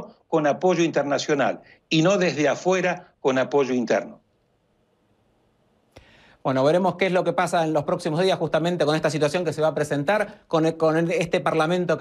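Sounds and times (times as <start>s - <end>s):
man speaking: 0.0s - 4.2s, 6.4s - 12.0s.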